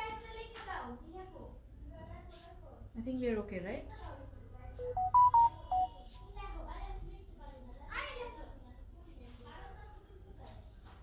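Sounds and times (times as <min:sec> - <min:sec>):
smartphone electronic beeps: 0:04.8 - 0:06.0.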